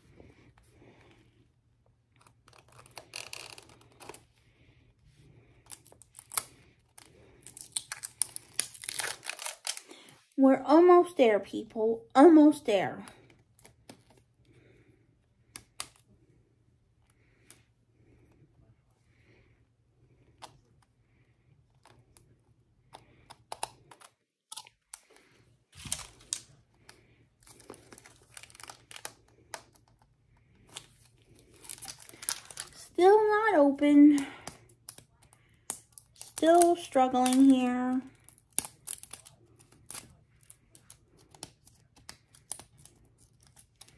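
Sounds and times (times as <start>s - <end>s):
plastic wrap clicking and crinkling: 5.7s - 10.1s, 25.8s - 32.8s, 34.2s - 43.9s.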